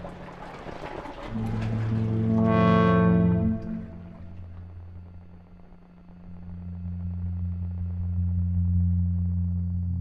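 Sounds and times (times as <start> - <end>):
low synth drone: 1.2 - 10.0.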